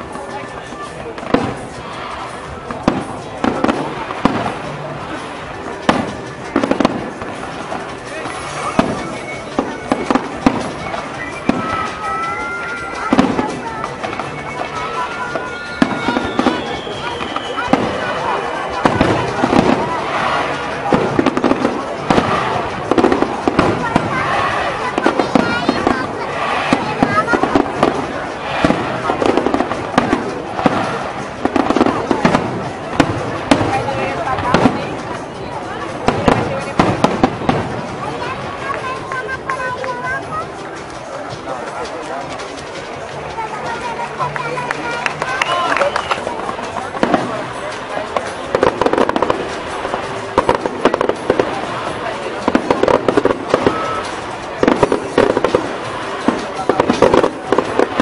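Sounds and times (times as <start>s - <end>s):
fireworks bursting with bangs: 0.0s - 58.0s.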